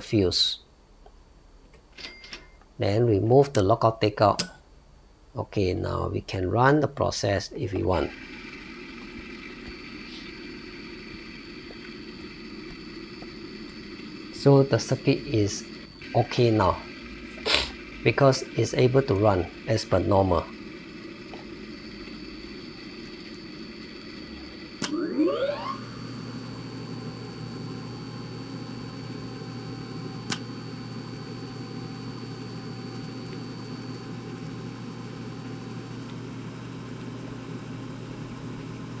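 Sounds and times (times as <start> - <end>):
electric motor whine and hum: 8.0 - 39.0
electric motor click: 9.6 - 36.2.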